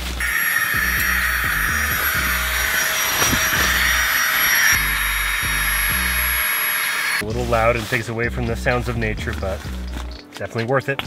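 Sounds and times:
electric air pump whirring: 0:00.0 - 0:07.2.

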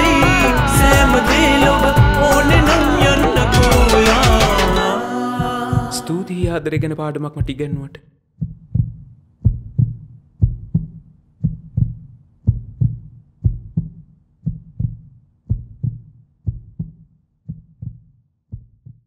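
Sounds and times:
heartbeat thumps: 0:00.1 - 0:04.8, 0:05.4 - 0:19.0.

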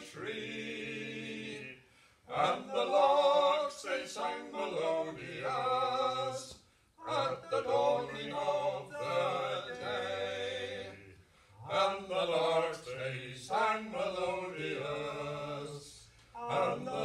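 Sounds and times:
men singing in harmony: 0:02.3 - 0:17.0.

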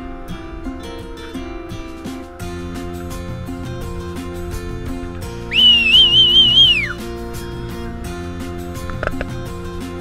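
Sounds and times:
guitar music: 0:00.0 - 0:10.0
high sliding whistle: 0:05.5 - 0:07.0.

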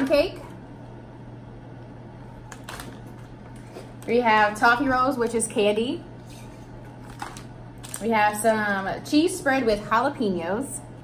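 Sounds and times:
steady low hum: 0:00.0 - 0:11.0
foil pouches crinkling: 0:07.0 - 0:08.1.

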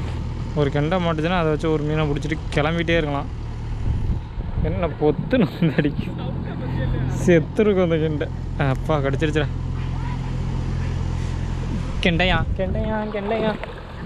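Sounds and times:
steady low hum: 0:00.0 - 0:14.0
people talking: 0:00.6 - 0:03.3, 0:04.6 - 0:11.0, 0:11.7 - 0:13.6.

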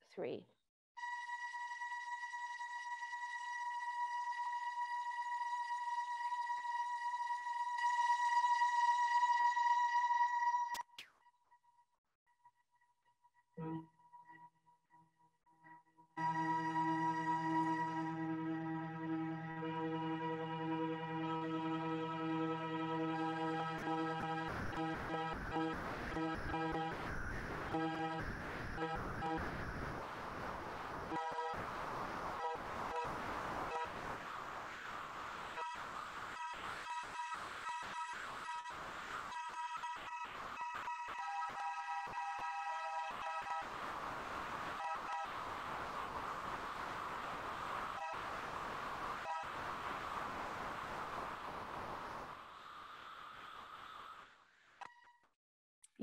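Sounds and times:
electronic tone with overtones: 0:13.6 - 0:14.4, 0:16.2 - 0:34.7
hiss: 0:49.8 - 0:54.4.

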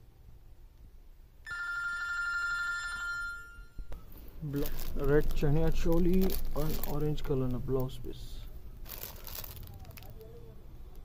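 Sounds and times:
bright bell-like chime: 0:01.5 - 0:03.9.

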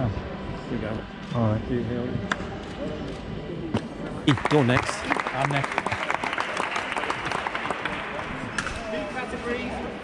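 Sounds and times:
background chatter: 0:00.0 - 0:10.0
crowd clapping: 0:04.1 - 0:08.7.

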